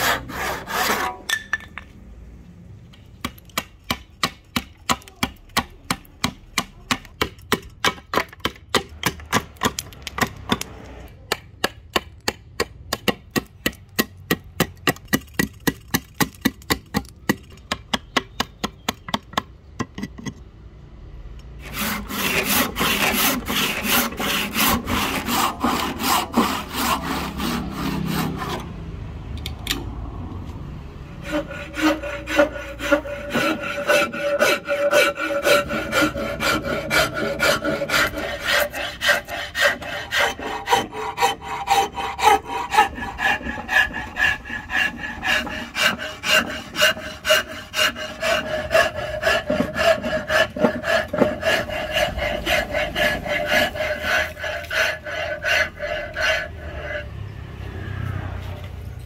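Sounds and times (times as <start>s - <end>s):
file rasping on wood: 0.0s - 1.3s, 3.6s - 10.7s, 21.6s - 28.7s, 31.2s - 57.3s
hand saw cutting wood: 0.0s - 1.4s, 3.3s - 17.9s, 21.6s - 28.8s, 31.2s - 57.5s.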